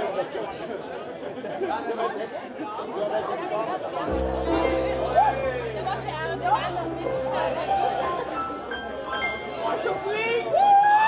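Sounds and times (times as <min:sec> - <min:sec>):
people talking: 0:00.0 - 0:10.7
keyboard held chord: 0:04.1 - 0:10.3.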